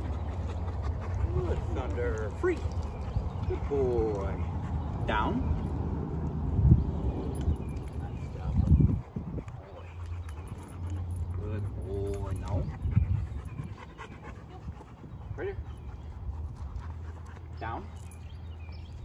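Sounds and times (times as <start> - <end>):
large dog panting: 0.0 - 6.6, 8.6 - 17.6.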